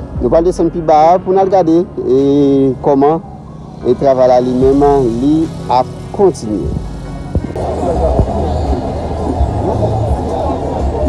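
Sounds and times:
background music: 0.0s - 11.0s
indistinct voices: 0.2s - 11.0s.

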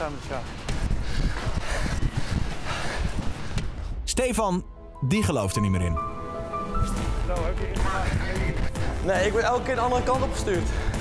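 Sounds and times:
footsteps walking briskly: 0.0s - 3.9s
wind rumbling on microphone: 0.0s - 4.0s.

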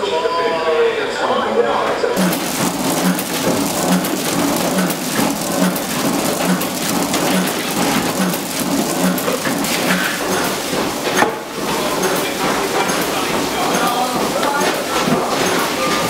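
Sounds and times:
packing machine clattering: 2.2s - 16.0s.

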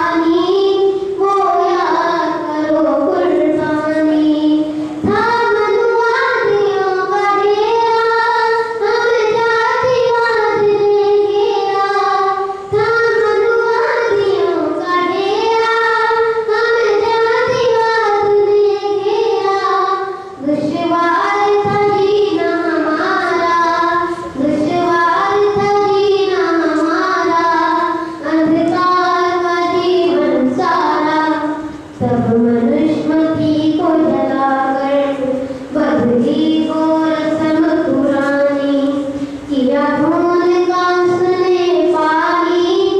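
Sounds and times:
boy singing into microphone: 0.0s - 42.9s.

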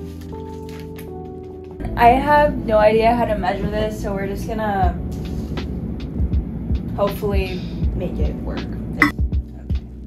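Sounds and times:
background music with low beat: 3.4s - 10.0s.

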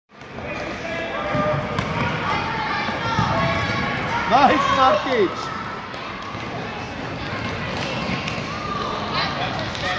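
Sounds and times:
voices of players and spectators: 0.1s - 9.9s.

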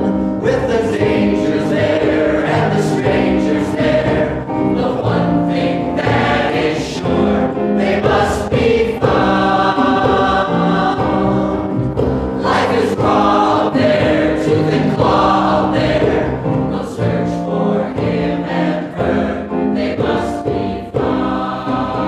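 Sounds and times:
cast singing in chorus: 0.5s - 22.0s.

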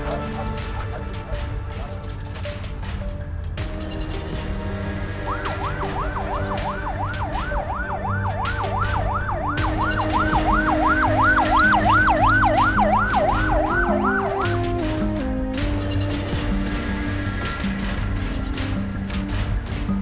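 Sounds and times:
background music with a beat: 0.0s - 20.0s
ambulance siren wailing: 5.0s - 15.5s.

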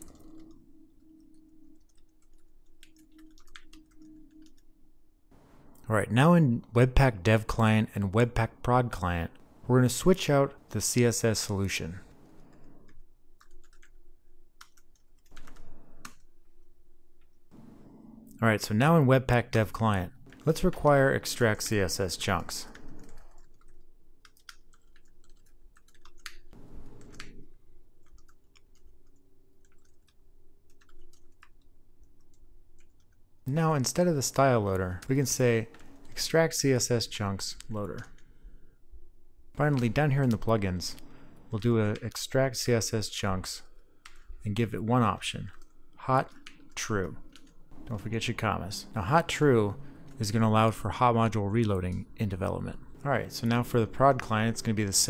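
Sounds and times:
computer keyboard typing: 0.0s - 4.6s, 12.4s - 14.0s, 14.6s - 16.2s, 22.2s - 33.1s, 45.4s - 47.9s
faint steady hum: 0.0s - 55.0s.

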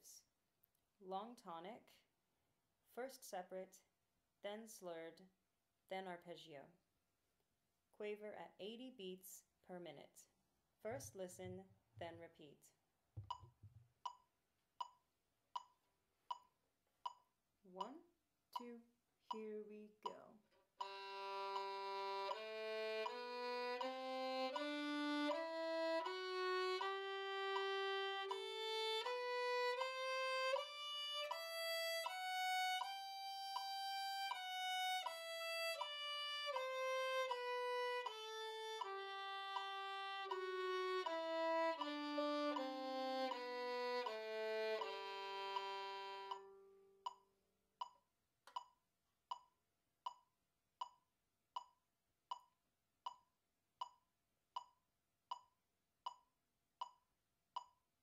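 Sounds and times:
metronome clicks: 15.6s - 18.0s, 18.6s - 49.5s, 51.6s - 52.5s
violin playing a scale: 20.8s - 46.9s.

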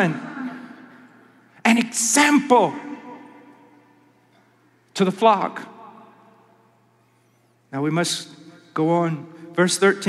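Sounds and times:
faint steady hum: 0.0s - 10.0s
man speaking in echoing hall: 0.0s - 10.0s.

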